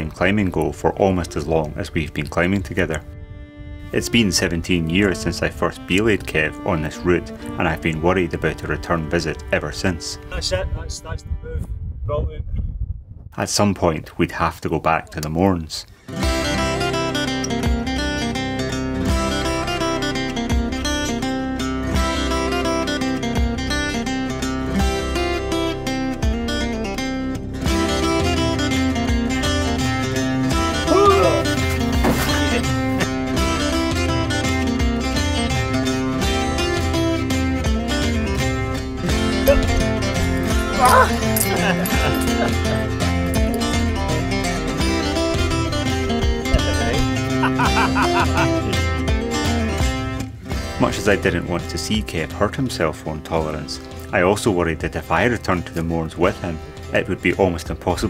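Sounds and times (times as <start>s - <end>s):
acoustic guitar music: 0.0s - 10.4s, 16.0s - 58.0s.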